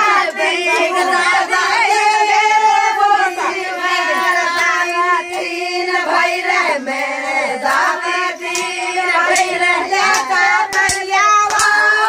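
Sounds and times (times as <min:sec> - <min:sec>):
women singing folk song: 0:00.0 - 0:12.0
sharp hand claps: 0:08.4 - 0:12.0.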